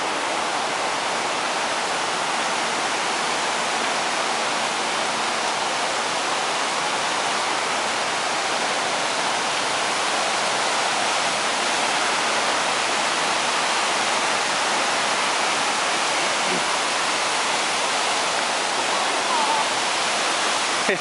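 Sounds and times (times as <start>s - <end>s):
waterfall rushing: 0.0s - 21.0s.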